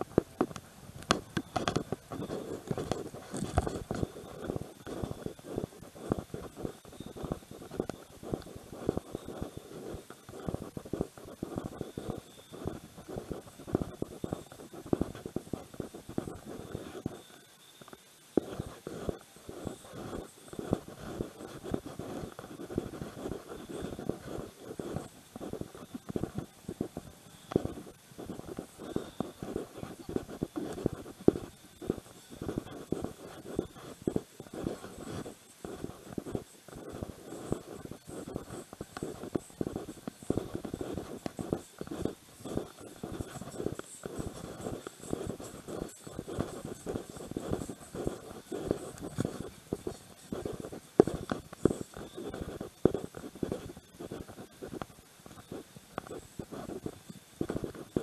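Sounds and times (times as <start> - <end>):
clothing rubbing on microphone: 0.0 - 58.0.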